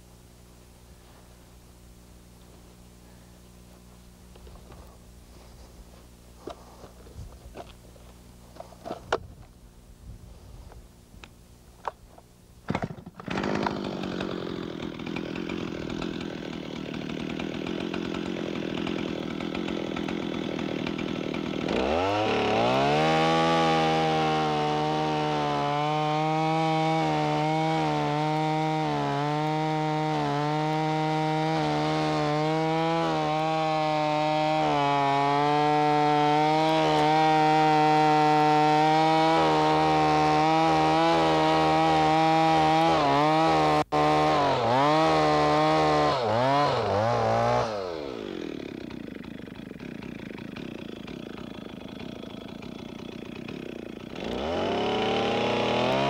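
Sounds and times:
chainsaw cutting log: 12.7s - 56.0s.

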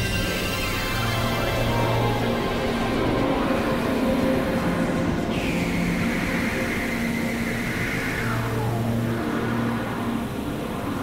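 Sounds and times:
low drone tones: 0.0s - 11.0s
synthesized noise wash: 0.0s - 11.0s.

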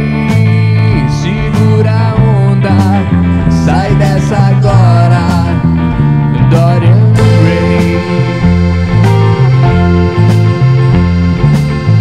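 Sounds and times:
bass guitar: 0.0s - 12.0s
bending lead guitar melody: 0.0s - 12.0s
drums: 0.0s - 12.0s
rhythm guitars: 0.0s - 12.0s.

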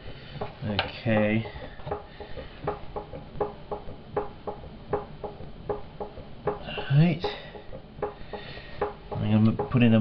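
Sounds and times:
potter's wheel ticking: 0.0s - 10.0s.

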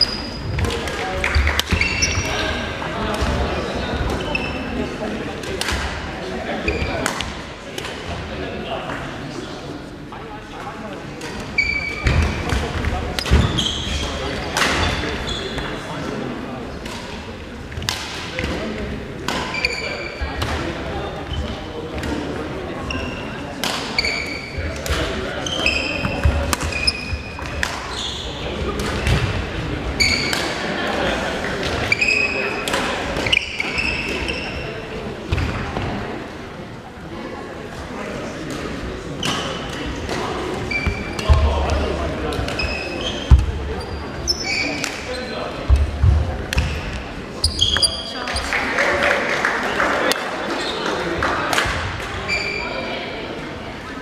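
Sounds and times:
rackets hitting shuttlecock: 0.5s - 2.3s, 5.4s - 6.0s, 16.8s - 18.6s, 23.6s - 28.0s, 30.0s - 30.6s, 31.6s - 34.3s, 44.7s - 45.1s, 45.7s - 47.0s
shoes squeaking on wooden floor: 1.2s - 2.6s, 40.6s - 41.6s, 42.5s - 45.4s, 47.4s - 48.5s.

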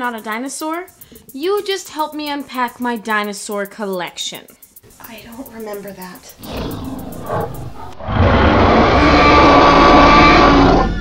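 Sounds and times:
dinosaur roar: 6.4s - 11.0s.

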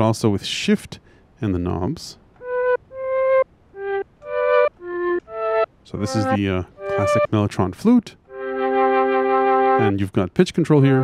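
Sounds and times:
synth flute notes: 2.4s - 7.4s, 8.3s - 10.0s.

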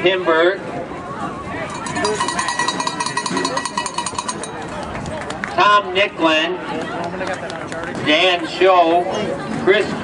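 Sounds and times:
faint voices: 0.0s - 10.0s
bell rung rapidly: 1.7s - 4.8s.

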